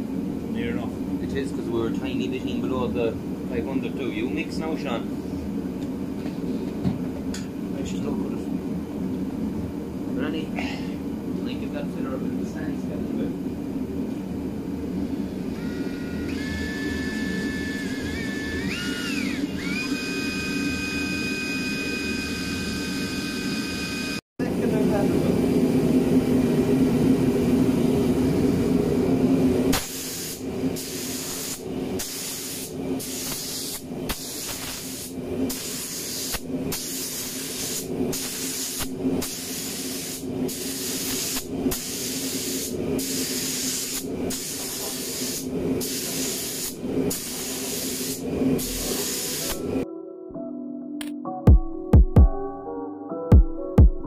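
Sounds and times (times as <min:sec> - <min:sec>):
cordless drill stirring paint: 0:16.2 - 0:24.2
spray gun hissing: 0:29.7 - 0:49.8.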